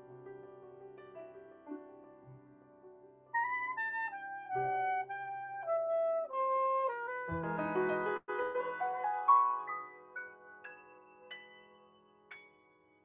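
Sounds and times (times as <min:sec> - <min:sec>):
jazz piano: 0:00.0 - 0:13.0
soprano saxophone melody: 0:03.3 - 0:09.6.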